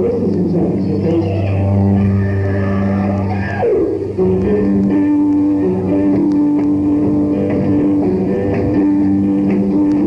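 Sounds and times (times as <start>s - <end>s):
rock band sustained low note: 0.0s - 10.0s.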